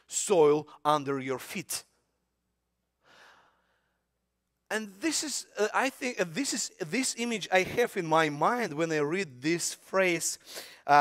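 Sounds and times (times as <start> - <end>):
man speaking: 0.0 - 1.9, 4.7 - 11.0
man breathing out: 3.0 - 3.9.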